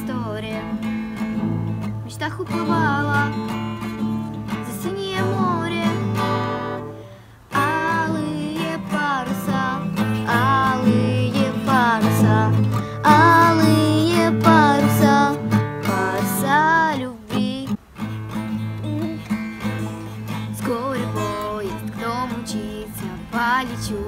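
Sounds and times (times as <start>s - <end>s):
girl singing: 0.0s - 17.8s, 18.8s - 24.0s
strummed acoustic guitar: 0.0s - 24.0s.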